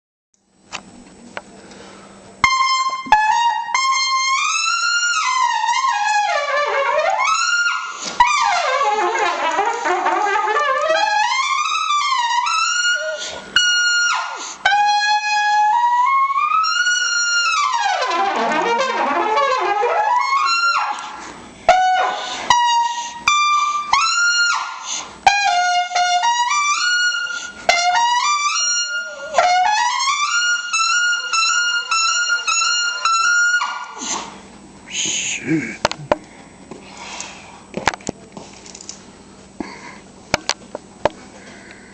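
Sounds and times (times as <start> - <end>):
solo trumpet high notes: 2.4 - 34.2.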